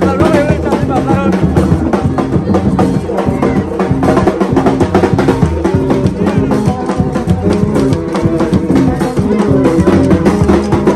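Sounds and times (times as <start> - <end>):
crowd voices: 0.0 - 10.9
hand drums beaten fast: 0.0 - 10.9.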